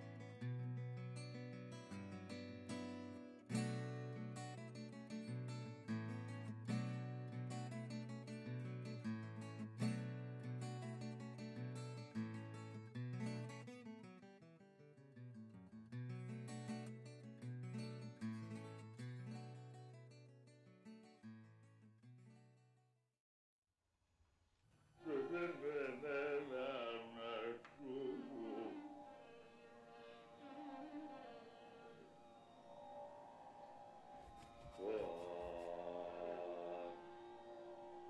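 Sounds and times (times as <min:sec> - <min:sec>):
acoustic guitar music: 0:00.0 - 0:22.7.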